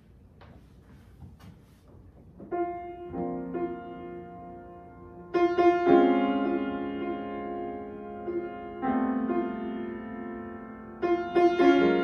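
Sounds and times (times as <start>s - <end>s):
faint shuffling: 0.0s - 3.0s
piano chord ringing: 2.5s - 12.0s.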